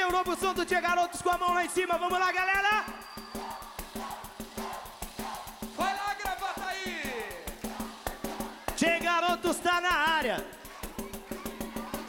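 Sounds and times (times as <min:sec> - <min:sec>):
live band playing fast beat: 0:00.0 - 0:12.0
shaker-like percussion: 0:00.0 - 0:12.0
drawn-out vocal call: 0:02.9 - 0:05.8.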